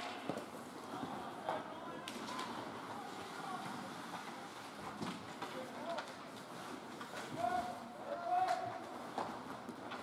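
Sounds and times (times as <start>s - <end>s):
hockey sticks and puck clacking: 0.0s - 3.4s, 4.0s - 10.0s.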